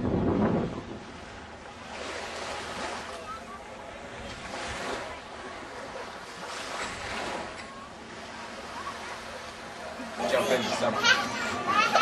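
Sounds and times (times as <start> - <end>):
wind on microphone: 0.0 - 2.1
surf washing onto beach: 0.0 - 12.0.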